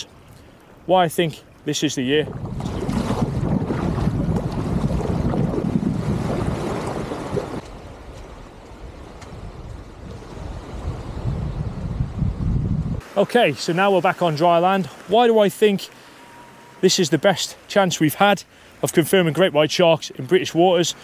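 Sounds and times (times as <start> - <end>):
waves at water's edge: 0.0 - 12.2, 13.0 - 21.0
sea water rushing past kayak: 2.2 - 7.6
wind buffeting microphone: 2.2 - 13.0.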